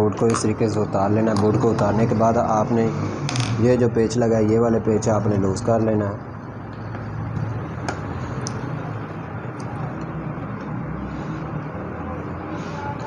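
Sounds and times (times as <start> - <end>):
distant traffic: 0.0 - 13.0.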